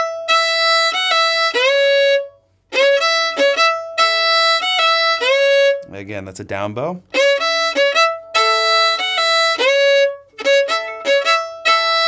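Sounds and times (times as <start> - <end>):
fiddle playing bowed phrase: 0.0 - 12.0.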